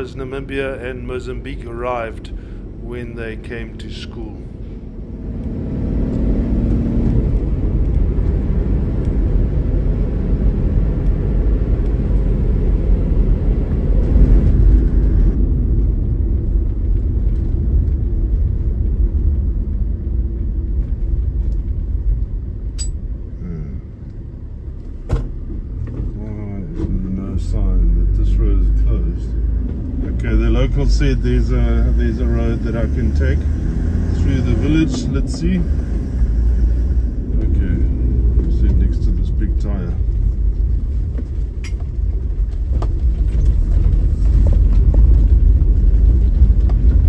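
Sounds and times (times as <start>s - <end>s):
engine and road rumble: 0.0s - 47.0s
road hiss: 30.5s - 37.3s.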